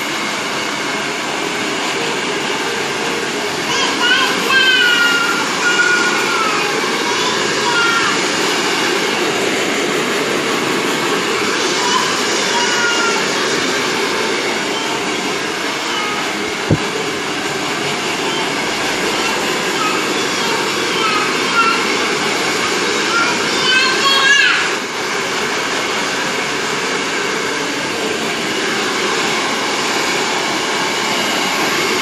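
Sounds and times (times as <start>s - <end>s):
hair dryer blowing: 0.0s - 32.0s.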